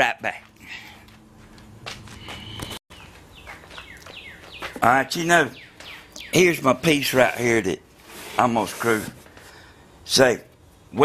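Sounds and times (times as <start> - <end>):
birds chirping: 2.1 - 7.8.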